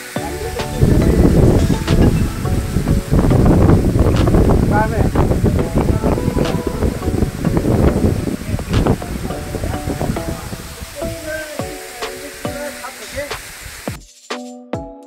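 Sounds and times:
background music with drum strikes: 0:00.0 - 0:04.5, 0:11.5 - 0:15.0
rushing waterfall: 0:00.0 - 0:14.0
wind on microphone: 0:00.4 - 0:11.6, 0:13.1 - 0:13.9.

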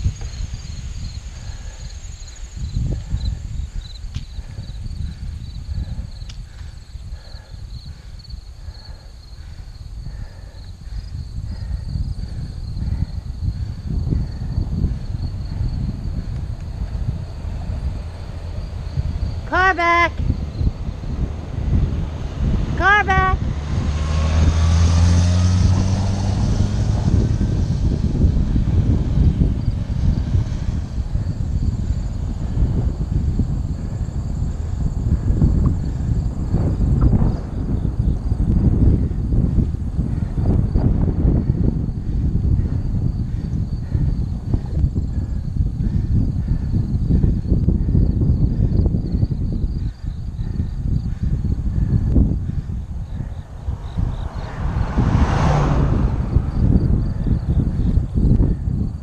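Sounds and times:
wind buffeting microphone: 0:00.0 - 0:59.0
car overtaking: 0:10.6 - 0:43.2, 0:51.0 - 0:58.5.

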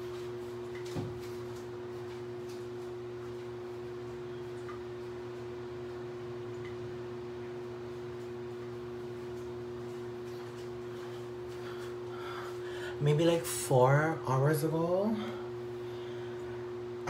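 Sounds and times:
steady electrical hum: 0:00.0 - 0:17.0.

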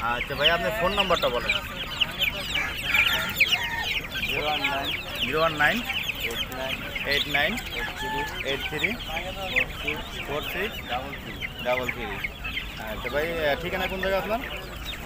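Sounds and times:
caged birds calling: 0:00.0 - 0:15.0
chickens clucking: 0:00.0 - 0:15.0.

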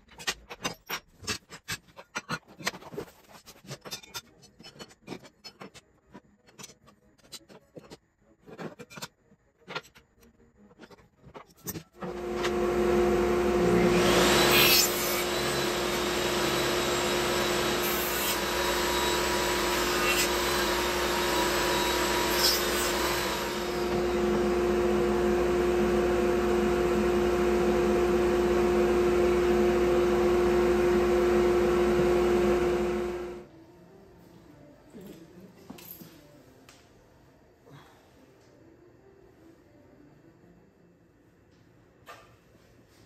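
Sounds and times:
table saw cutting wood: 0:12.0 - 0:33.4.

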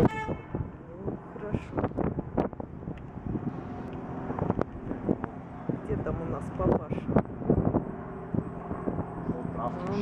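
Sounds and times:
low engine drone: 0:00.0 - 0:10.0
wind rumbling on microphone: 0:00.0 - 0:10.0.

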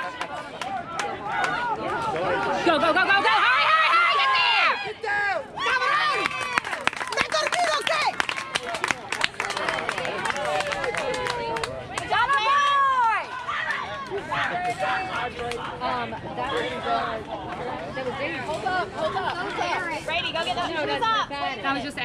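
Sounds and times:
people calling and shouting: 0:00.0 - 0:22.0
long drawn-out shout: 0:01.2 - 0:08.1.

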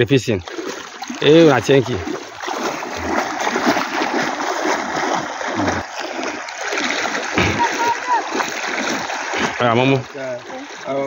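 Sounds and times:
wading through water splashing: 0:00.0 - 0:11.0.

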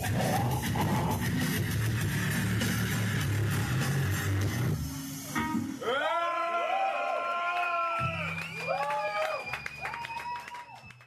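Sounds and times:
distorted guitars: 0:00.0 - 0:05.9.

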